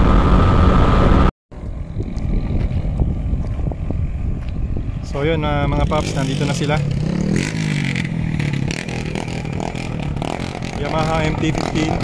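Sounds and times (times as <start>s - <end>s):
wind rumbling on microphone: 0.0s - 12.0s
motorcycle engine running: 5.6s - 12.0s.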